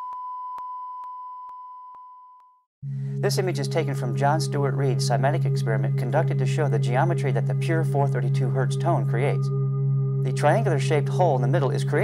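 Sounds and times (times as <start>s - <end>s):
steady sine tone: 0.0s - 12.0s.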